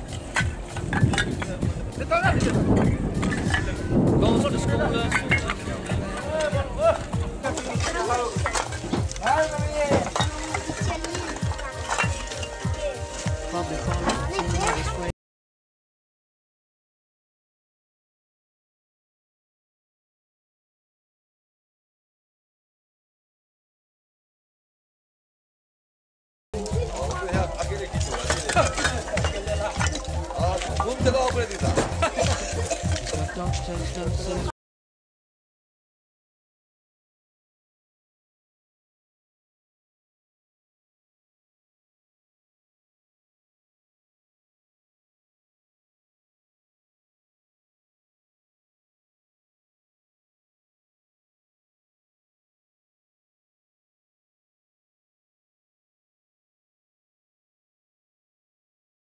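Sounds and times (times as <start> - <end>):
music: 0.0 - 15.1, 26.6 - 34.5
people talking and calling: 0.0 - 15.1, 26.6 - 34.5.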